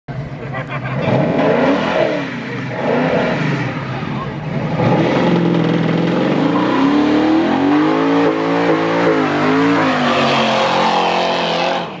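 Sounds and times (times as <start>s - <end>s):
car engine revving hard: 1.0s - 12.0s.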